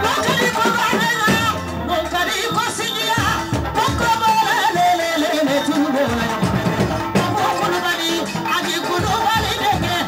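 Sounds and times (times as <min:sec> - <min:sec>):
amplified instrumental backing: 0:00.0 - 0:10.0.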